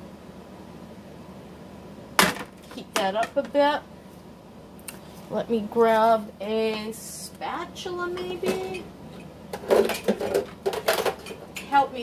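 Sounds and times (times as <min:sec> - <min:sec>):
metal kitchen utensils clattering: 0:09.6 - 0:11.8.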